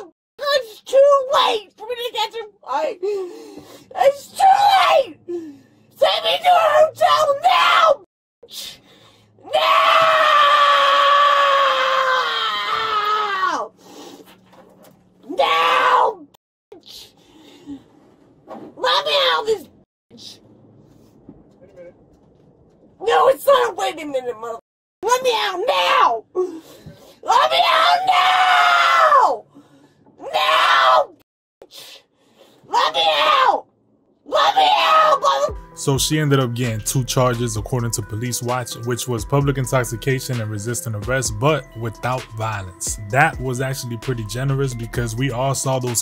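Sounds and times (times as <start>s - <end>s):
woman screaming: 4.0s - 5.2s, 6.0s - 8.0s, 9.4s - 13.7s, 15.3s - 16.2s, 25.1s - 26.5s, 27.2s - 29.4s, 30.2s - 31.2s, 32.7s - 33.6s, 34.3s - 35.6s.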